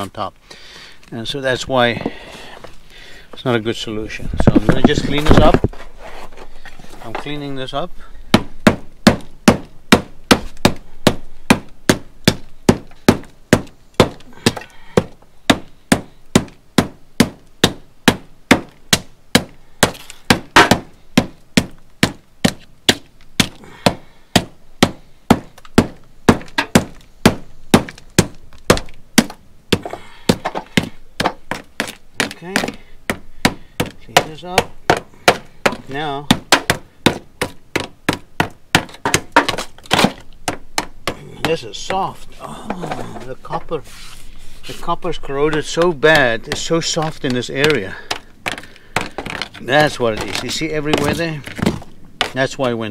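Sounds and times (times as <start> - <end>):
hammer chipping tar off metal: 8.3 - 43.8, 44.6 - 52.8.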